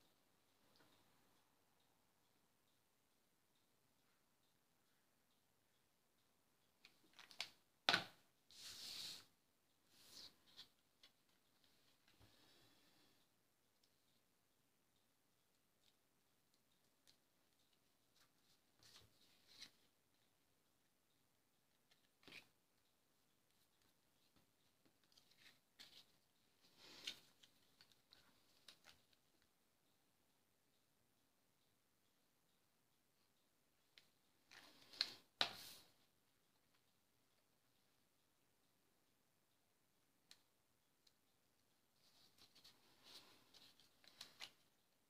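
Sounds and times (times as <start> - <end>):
paper sliding across mat: 8.5 - 9.3.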